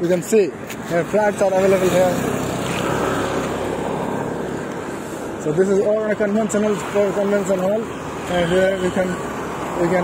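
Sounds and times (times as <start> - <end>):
passing vehicle engine and tyres: 0.0 - 10.0.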